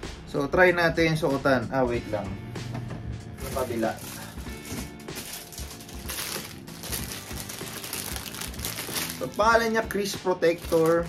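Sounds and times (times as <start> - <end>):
background music with beat: 0.0 - 11.0
thin plastic crinkling: 3.4 - 11.0.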